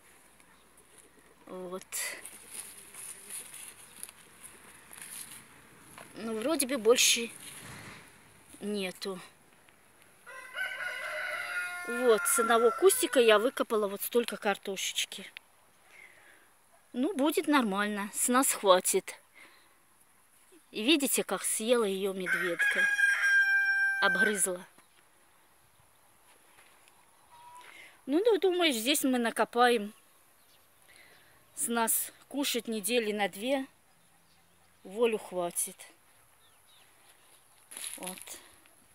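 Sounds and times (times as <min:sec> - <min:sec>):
rooster crowing: 0:10.2 - 0:13.2, 0:22.3 - 0:24.4.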